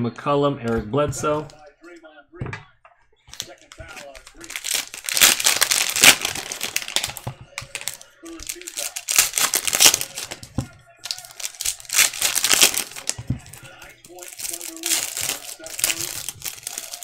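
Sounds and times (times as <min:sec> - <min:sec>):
plastic wrappers crinkling: 0:03.2 - 0:17.0.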